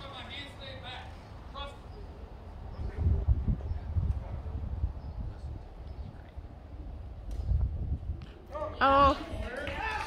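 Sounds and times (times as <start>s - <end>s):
wind rumbling on microphone: 1.9s - 10.0s.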